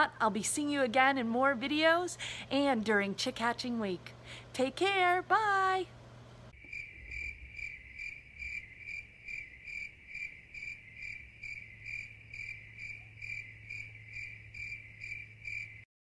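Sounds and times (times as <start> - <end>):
cricket chirping: 6.6 - 15.9.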